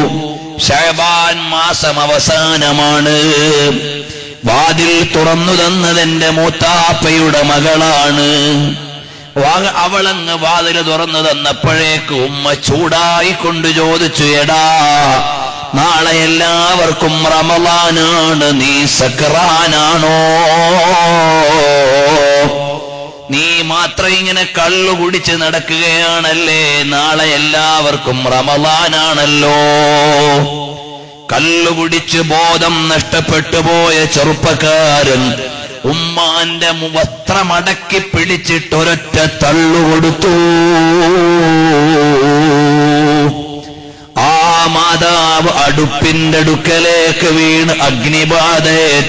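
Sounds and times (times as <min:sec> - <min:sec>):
man chanting: 0:00.0 - 0:49.0.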